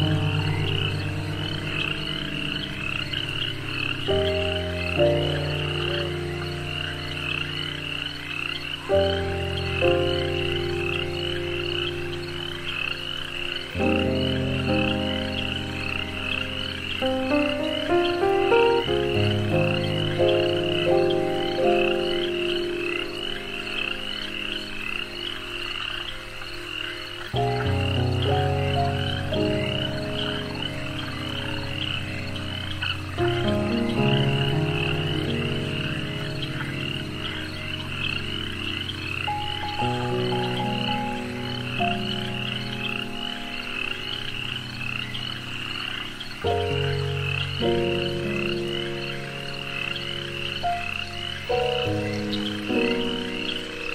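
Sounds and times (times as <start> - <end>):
frog chorus: 0.0 - 53.9
slow sustained chords: 0.0 - 53.9.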